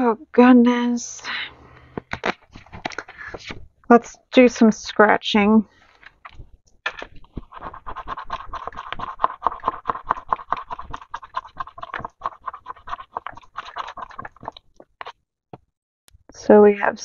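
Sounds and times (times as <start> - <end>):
scratching coating off paper card: 2.0 - 3.6, 5.9 - 15.2.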